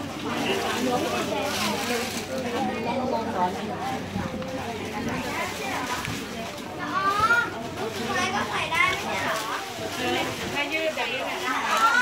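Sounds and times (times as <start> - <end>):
crowd hubbub: 0.0 - 12.0
people talking: 0.0 - 12.0.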